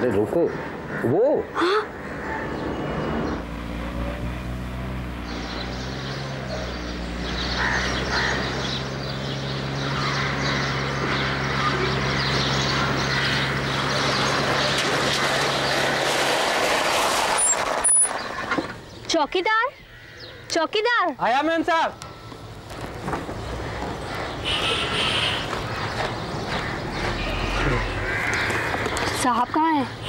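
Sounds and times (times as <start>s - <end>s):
tyre and road noise: 0.0s - 30.0s.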